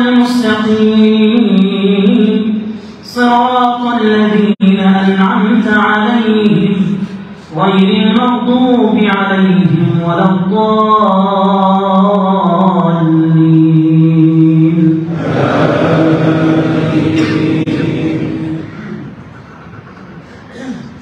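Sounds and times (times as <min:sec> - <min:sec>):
man chanting over loudspeakers: 0:00.0 - 0:19.2
noisy rush with steady tone: 0:00.0 - 0:21.0.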